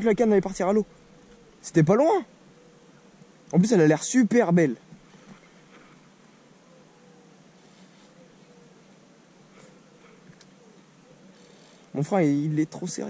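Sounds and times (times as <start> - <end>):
outdoor background hiss: 0.0 - 13.0.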